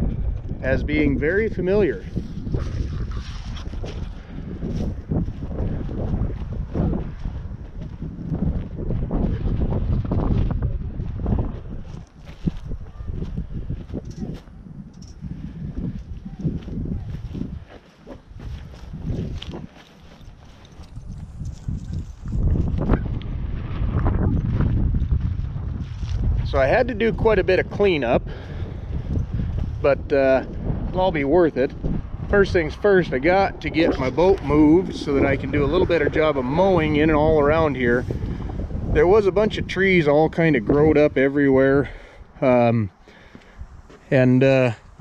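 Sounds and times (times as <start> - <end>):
gusty wind buffeting microphone: 0.0 - 45.0.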